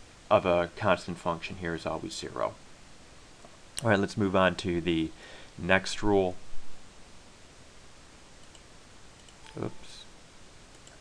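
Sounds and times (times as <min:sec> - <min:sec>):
computer mouse clicks: 0:08.4 - 0:09.7, 0:10.7 - 0:11.0
man speaking: 0:09.5 - 0:10.1.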